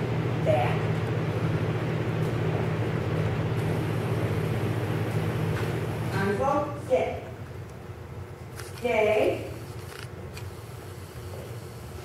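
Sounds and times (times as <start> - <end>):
low mechanical hum: 0.0 - 12.0.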